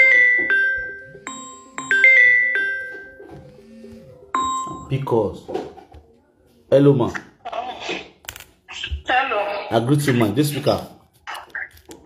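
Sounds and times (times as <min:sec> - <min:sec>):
chime-like keyboard notes: 0:00.0 - 0:05.4.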